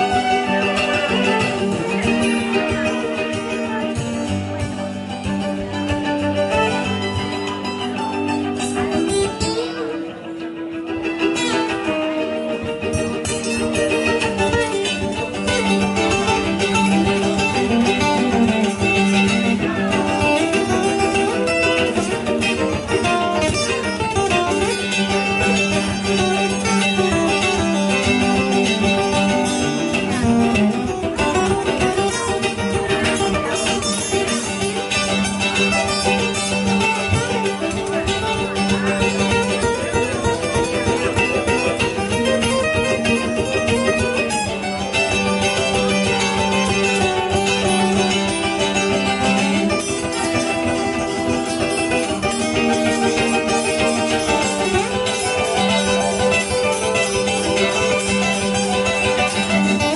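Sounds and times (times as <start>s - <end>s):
acoustic guitar: 0.0s - 59.9s
fiddle: 0.0s - 59.9s
mandolin: 0.0s - 59.9s.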